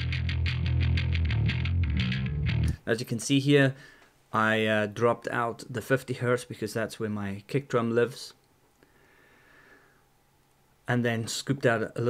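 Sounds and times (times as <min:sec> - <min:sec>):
distorted electric bass: 0:00.0 - 0:02.8.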